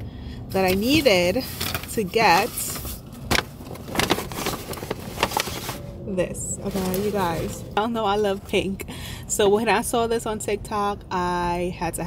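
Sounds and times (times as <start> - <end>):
paper bag crackling: 0.6 - 6.0, 6.6 - 7.7.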